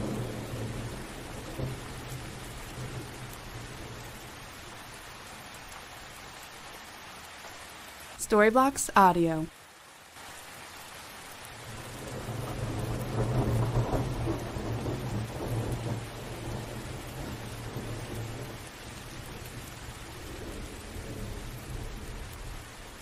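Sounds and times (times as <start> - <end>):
thunder rumbling: 0.0 - 4.9, 11.6 - 23.0
steady rain: 0.0 - 23.0.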